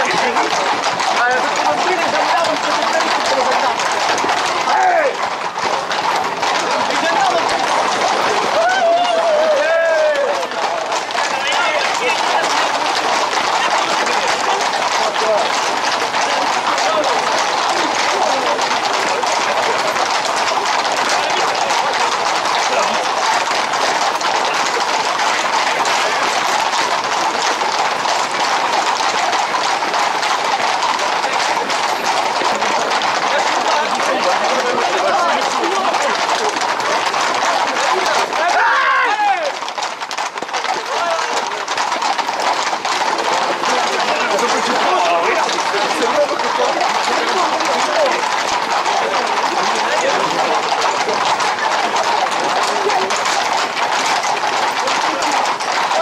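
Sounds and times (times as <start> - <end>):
crowd voices: 0.0 - 56.0
horses' hooves on asphalt: 0.0 - 56.0
people running: 0.0 - 56.0.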